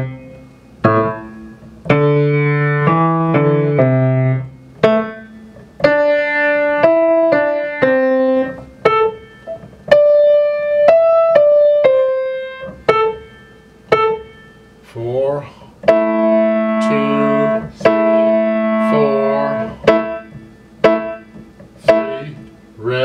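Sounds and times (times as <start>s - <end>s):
slow grand piano piece: 0.0s - 23.0s.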